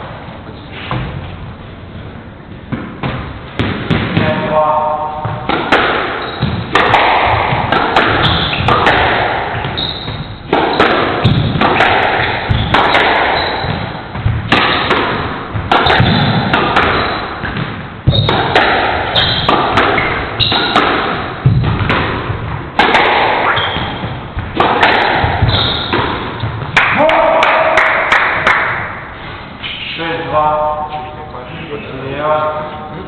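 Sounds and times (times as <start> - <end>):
squash ball hitting racquets and walls: 0.0 - 1.5, 2.4 - 29.8.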